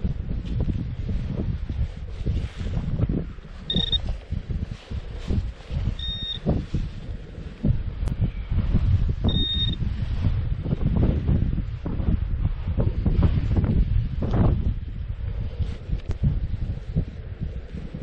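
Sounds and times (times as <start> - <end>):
wind buffeting microphone: 0.0 - 18.0
metal detector beeps: 3.7 - 4.1, 6.0 - 6.5, 9.3 - 9.8.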